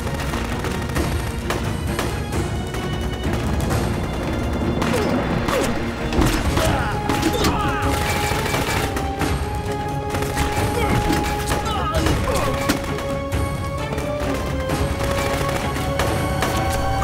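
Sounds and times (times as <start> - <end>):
dramatic background music: 0.0 - 17.0
gunshots: 0.0 - 17.0.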